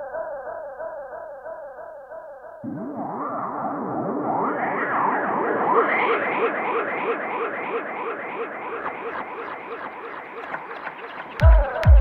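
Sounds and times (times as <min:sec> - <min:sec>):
swooping synthesizer line: 0:00.0 - 0:12.0.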